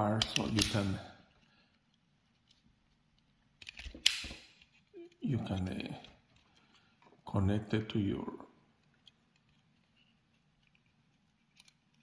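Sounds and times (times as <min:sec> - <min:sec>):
wire stripper snapping: 0:00.2 - 0:00.9, 0:03.6 - 0:04.5
small clicks: 0:08.8 - 0:12.0.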